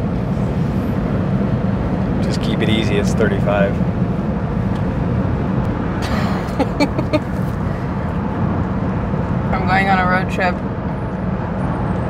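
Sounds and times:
car cabin rumble: 0.0s - 8.6s.

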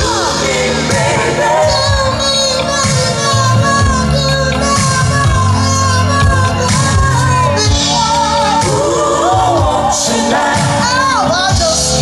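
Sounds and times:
band playing bass keyboards drums: 0.0s - 12.0s
woman singing: 0.0s - 12.0s.

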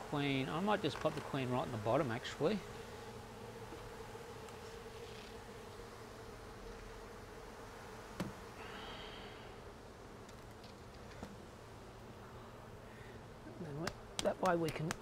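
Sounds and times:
honey bees buzzing: 0.0s - 15.0s.

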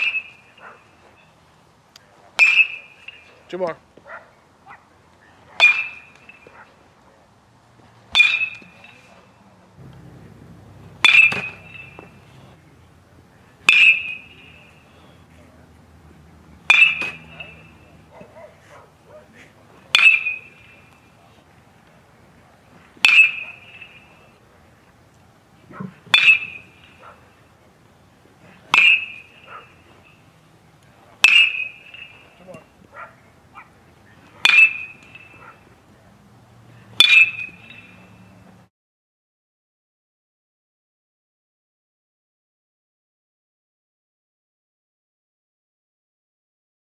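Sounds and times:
metal bat pinging ball: 8.1s - 8.8s, 9.8s - 12.6s, 13.6s - 14.7s, 16.6s - 17.9s, 19.9s - 20.7s, 23.0s - 24.0s, 26.1s - 26.8s, 28.7s - 29.3s, 31.2s - 32.3s, 34.4s - 35.4s, 37.0s - 37.9s.

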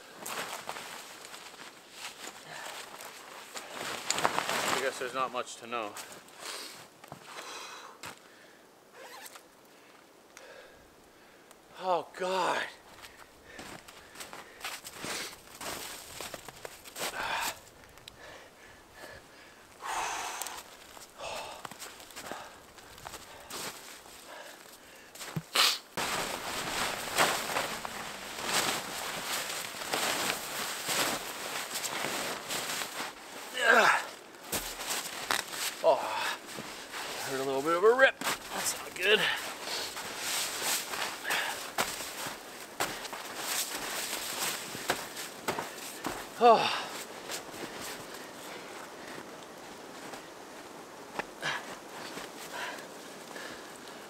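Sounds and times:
tent fabric rustling: 0.0s - 5.2s, 20.6s - 54.0s
crunching and scraping snow: 0.0s - 6.9s, 12.4s - 17.8s, 20.2s - 50.7s
person grunting with effort: 33.5s - 34.1s, 46.4s - 46.9s.

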